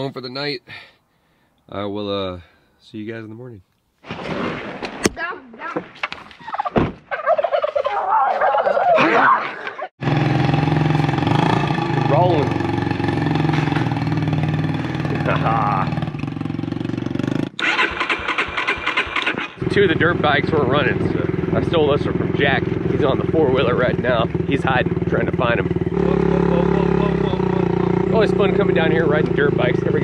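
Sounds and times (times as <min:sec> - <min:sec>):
wavering voice-like calls: 0:06.4 - 0:09.9
dirt bike engine idling: 0:10.0 - 0:17.5, 0:19.4 - 0:30.0.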